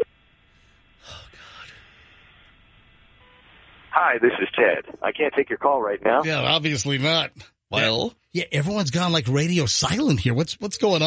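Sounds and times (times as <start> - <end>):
phone line hiss: 3.2 - 4.7.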